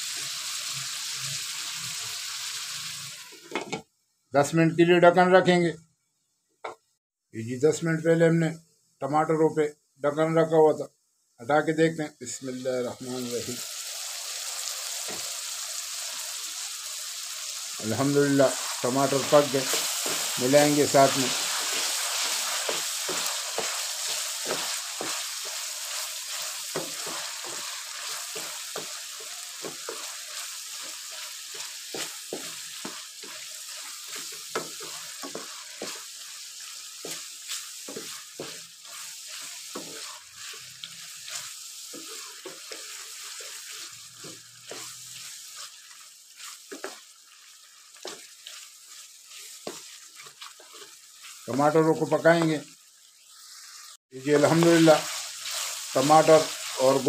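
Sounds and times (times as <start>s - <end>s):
meat sizzling in a wok: 0.0s - 3.8s, 10.2s - 57.0s
wooden spatula scraping a pan: 18.4s - 51.6s, 54.3s - 57.0s.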